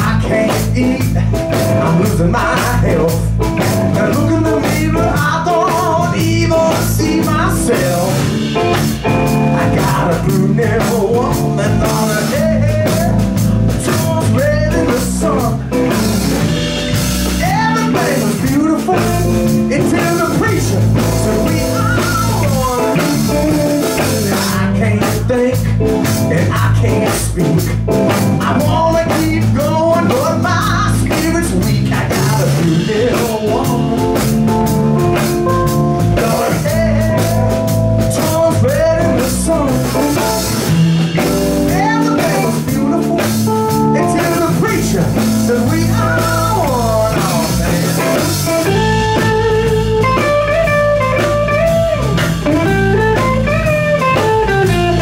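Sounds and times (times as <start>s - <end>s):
blues band playing: 0.0s - 55.0s
electric guitar bending notes: 0.0s - 55.0s.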